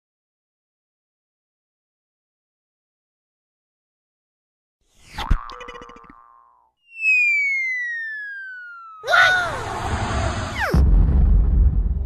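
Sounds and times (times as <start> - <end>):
falling whistle-like tone: 6.8 - 10.8.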